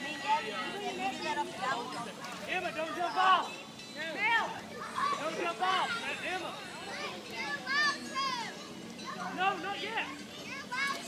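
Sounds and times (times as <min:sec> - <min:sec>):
high-pitched voices chattering: 0:00.0 - 0:11.0.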